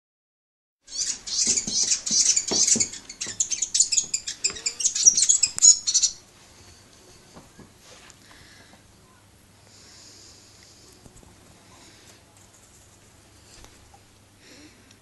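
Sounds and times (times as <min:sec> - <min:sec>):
bird chirping high cheeps: 0:00.9 - 0:06.2.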